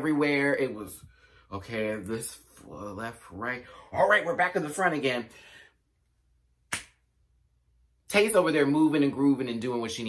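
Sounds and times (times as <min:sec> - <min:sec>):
sharp snap: 0:06.7 - 0:07.0.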